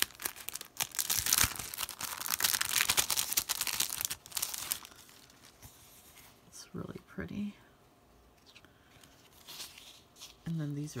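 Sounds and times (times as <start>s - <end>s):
plastic packaging crinkling: 0.0s - 5.7s.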